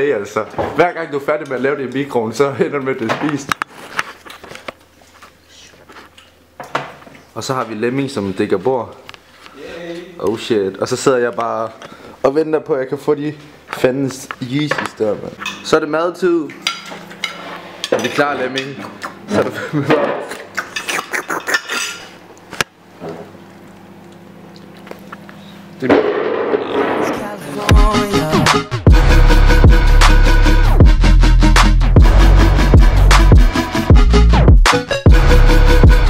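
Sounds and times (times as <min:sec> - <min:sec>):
cutlery clinking on plates: 0:16.5 - 0:18.9, 0:20.2 - 0:22.2.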